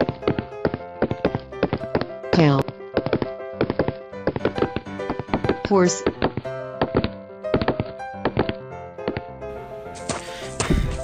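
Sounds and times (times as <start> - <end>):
cartoon hoof clip-clop knocks: 0.0 - 9.3
background music with held notes: 0.0 - 11.0.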